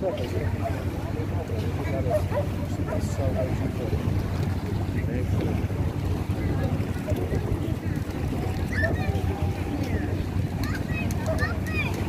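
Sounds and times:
faint distant voices: 0.0s - 12.0s
wind buffeting microphone: 0.0s - 12.0s.

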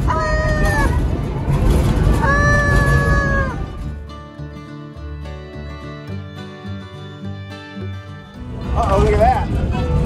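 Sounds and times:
low rumble: 0.0s - 4.2s, 8.4s - 10.0s.

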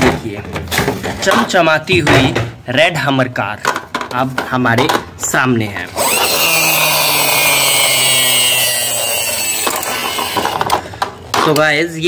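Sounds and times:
toy car motor whirring: 6.0s - 10.8s.

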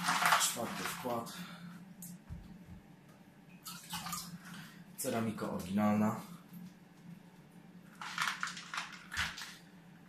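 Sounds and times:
water dripping and trickling: 3.5s - 4.7s.

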